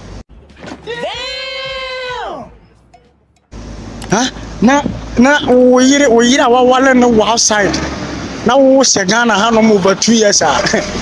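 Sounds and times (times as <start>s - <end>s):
man yelling high-pitched: 0.8s - 2.6s.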